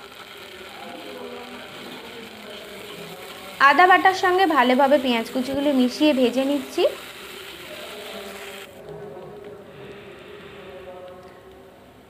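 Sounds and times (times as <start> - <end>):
onions sizzling in hot oil: 3.3 - 8.2.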